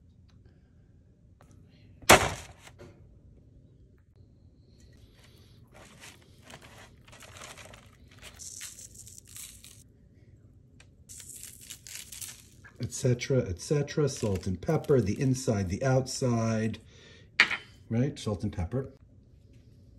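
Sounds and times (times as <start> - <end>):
parchment paper crinkling: 5.1 - 9.8, 11.1 - 15.8.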